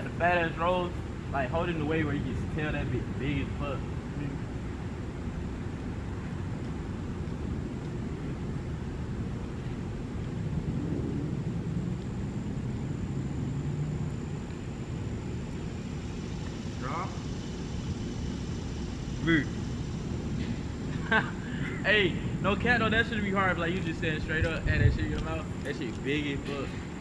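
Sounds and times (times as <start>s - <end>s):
distant motor traffic rumble: 0.0s - 27.0s
engine drone: 0.0s - 27.0s.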